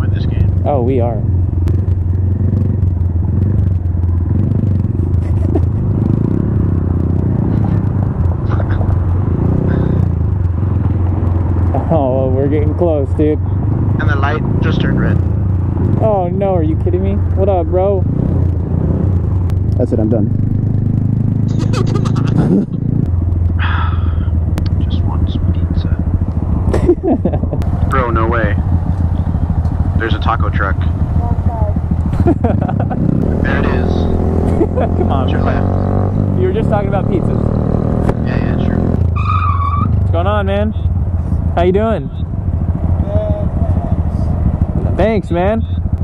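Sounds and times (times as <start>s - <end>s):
person laughing: 5.2s - 5.9s, 21.5s - 22.8s, 23.6s - 24.3s, 26.7s - 27.6s, 32.1s - 33.7s, 34.4s - 35.6s
faint voice: 8.5s - 9.0s, 14.0s - 15.2s, 21.5s - 22.6s, 23.6s - 26.0s, 43.0s - 44.2s
motorcycle engine idling: 23.1s - 36.0s
person sighing: 23.6s - 24.3s.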